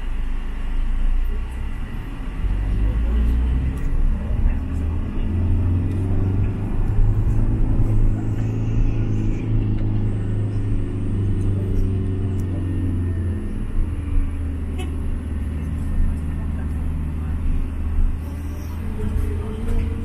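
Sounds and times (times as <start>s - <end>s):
engine and road drone inside van: 0.0s - 20.0s.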